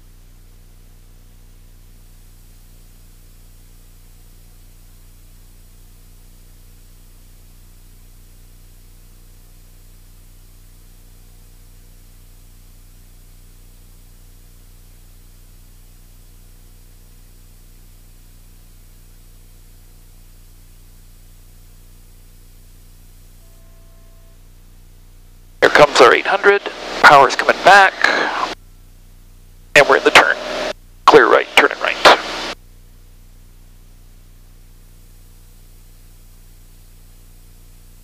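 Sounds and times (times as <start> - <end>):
propeller plane engine drone: 25.6 - 28.6, 29.8 - 32.6.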